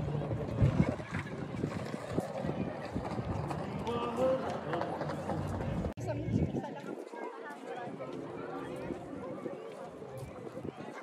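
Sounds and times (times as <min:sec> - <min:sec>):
people talking indistinctly: 0:01.9 - 0:11.0.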